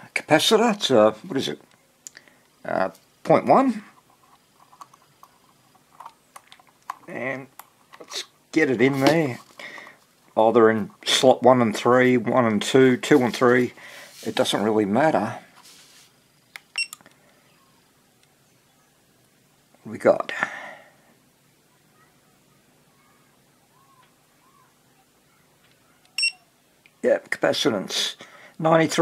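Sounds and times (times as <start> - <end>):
short high beep: 26.2 - 26.4.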